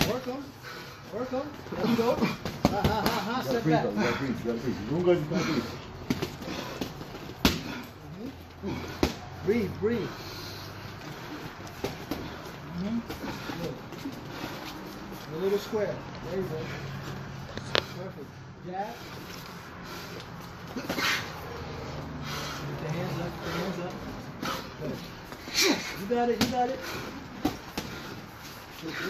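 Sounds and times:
boxing gloves knocking: 1.8s - 3.4s
gloved punches: 6.0s - 7.8s.

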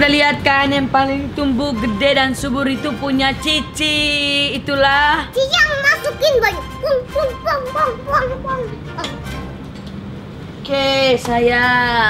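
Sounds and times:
child speaking high-pitched: 5.3s - 9.2s.

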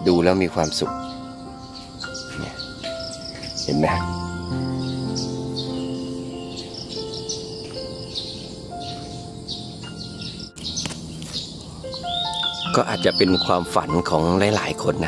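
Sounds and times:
small birds chirping: 0.0s - 15.0s
soft background music: 0.0s - 15.0s.

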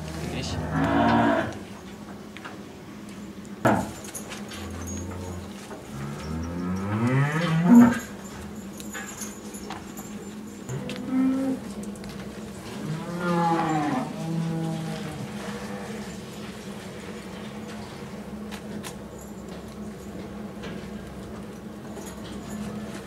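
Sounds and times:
cows mooing: 0.0s - 1.6s, 4.7s - 8.2s, 10.7s - 11.7s, 12.8s - 16.3s.

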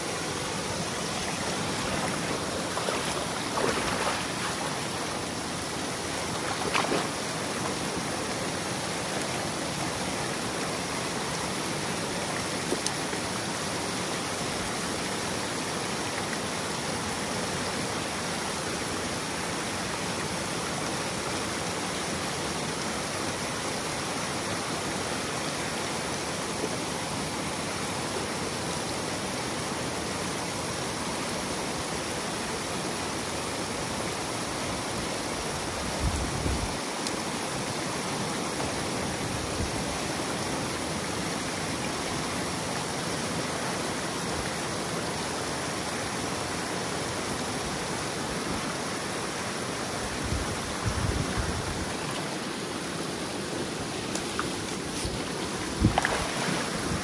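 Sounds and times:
water rushing into pool: 0.0s - 14.7s, 48.1s - 57.0s.

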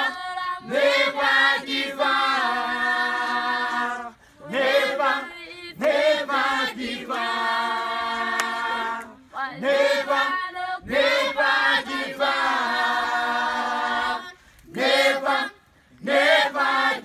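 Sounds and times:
a cappella group singing: 0.0s - 17.0s.

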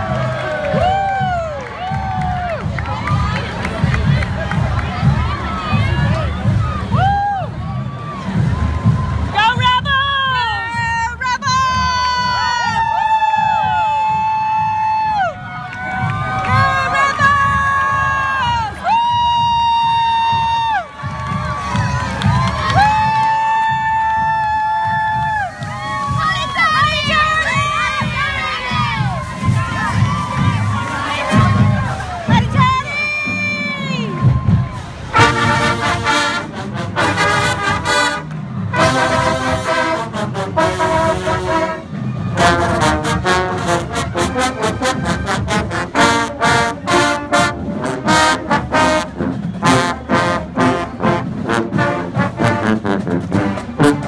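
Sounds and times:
people shouting and cheering: 0.0s - 52.6s
drums: 0.0s - 54.0s
marching band brass playing: 13.4s - 54.0s.

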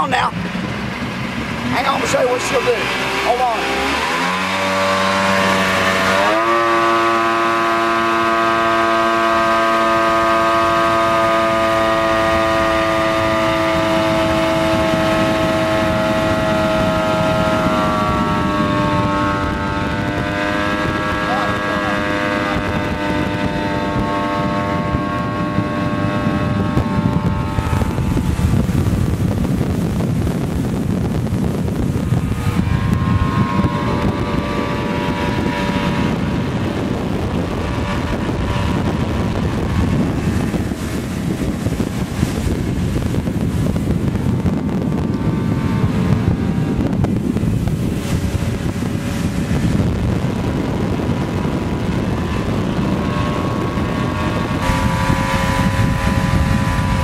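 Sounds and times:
boat engine at high throttle: 0.0s - 57.0s
rushing water: 0.0s - 57.0s
rushing wind: 0.0s - 57.0s.

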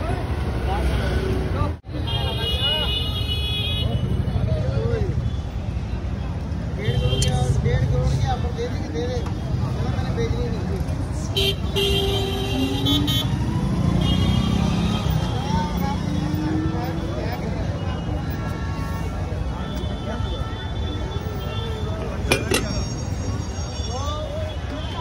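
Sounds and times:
traffic rumble: 0.0s - 25.0s
voices of passers-by: 0.0s - 25.0s.

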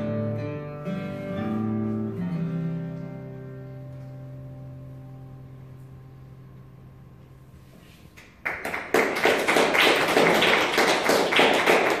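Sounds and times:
audience applauding: 8.2s - 12.0s.

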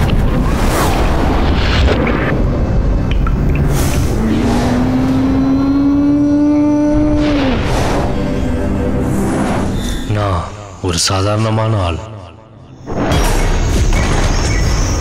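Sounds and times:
whooshes: 0.0s - 5.7s.

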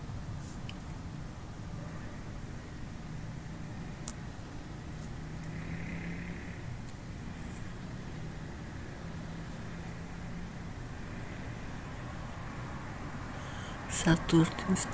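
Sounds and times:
faint hum: 0.0s - 14.9s
low background rumble: 0.0s - 14.9s.

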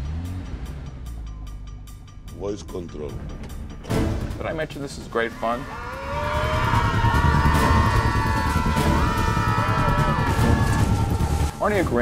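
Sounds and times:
speeding car engine and tyres: 0.0s - 4.0s
orchestral film score: 0.8s - 12.0s.

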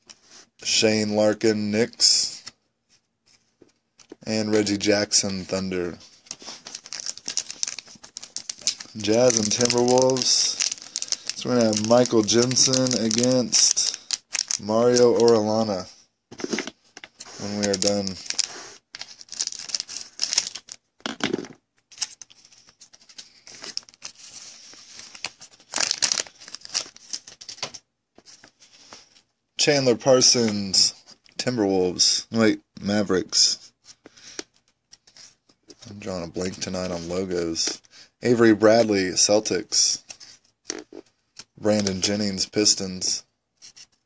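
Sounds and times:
foil wrapper crinkling: 6.2s - 15.7s, 17.3s - 20.8s, 21.9s - 27.8s.

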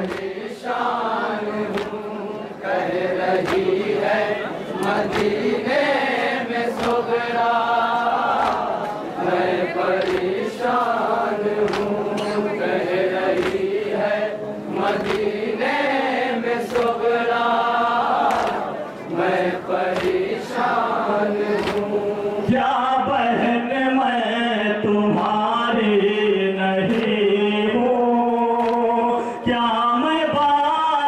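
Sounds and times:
group of mourners chanting: 0.0s - 29.7s
men chanting through microphone: 0.0s - 31.0s.

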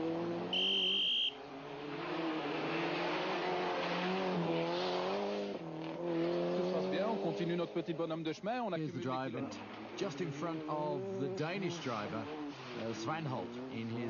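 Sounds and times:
rally car engine revving: 0.0s - 14.0s.

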